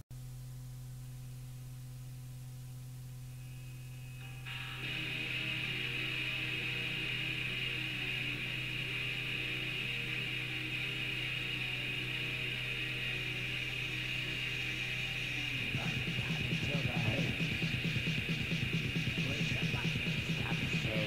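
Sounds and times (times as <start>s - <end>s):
low hum: 0.1s - 21.0s
tape hiss: 0.1s - 21.0s
sustained low guitar notes: 15.0s - 21.0s.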